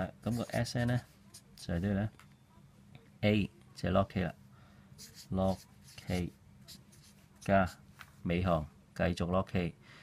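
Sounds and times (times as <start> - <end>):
marker writing on paper: 0.2 - 1.6, 5.0 - 7.8.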